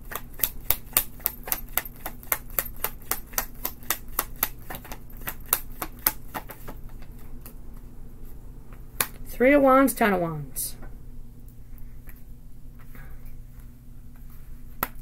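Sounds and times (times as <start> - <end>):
cards being shuffled: 0.0 - 7.6.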